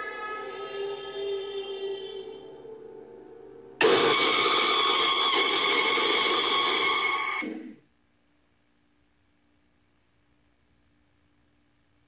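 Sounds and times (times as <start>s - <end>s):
faint eerie drone: 0.0s - 7.8s
loud harsh scream: 3.8s - 7.8s.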